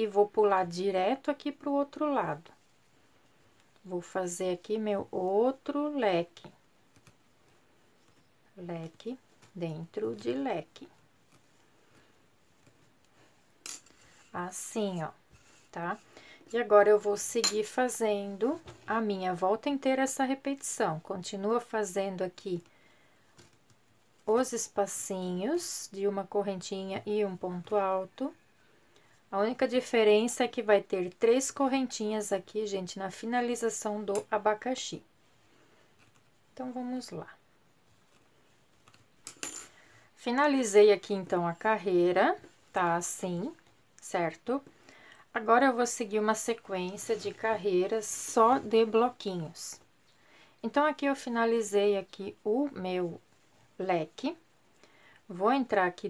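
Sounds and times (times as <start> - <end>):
metal hook clinking on table: 13.6 - 14.0, 39.2 - 39.8.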